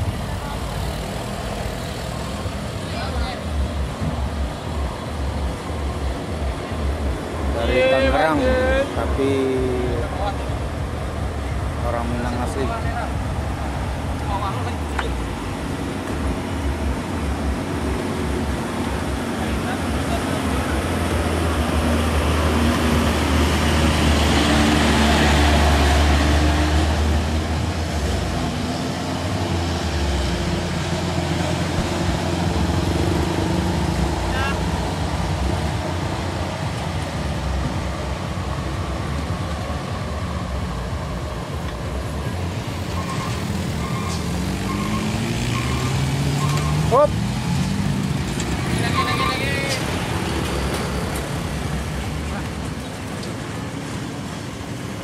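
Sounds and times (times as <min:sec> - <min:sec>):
engine revving: 0:16.8 - 0:36.6, 0:42.9 - 0:52.6
short beeps: 0:42.9 - 0:46.9.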